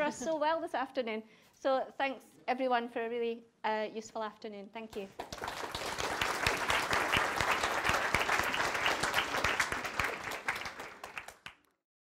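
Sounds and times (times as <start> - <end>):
audience applauding: 5.2 - 11.7.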